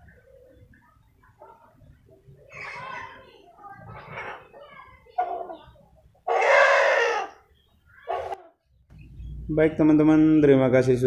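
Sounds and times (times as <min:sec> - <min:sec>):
rooster crowing: 0:06.3 - 0:07.4.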